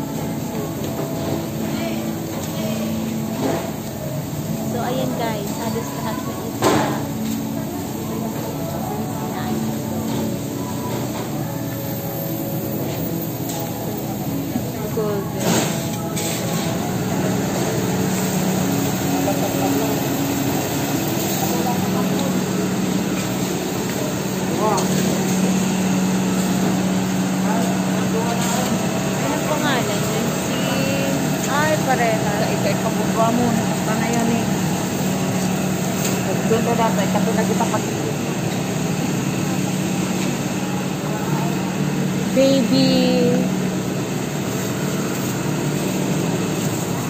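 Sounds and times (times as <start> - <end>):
faint voices of shoppers: 0.0 - 47.0
steady mechanical hum: 0.0 - 47.0.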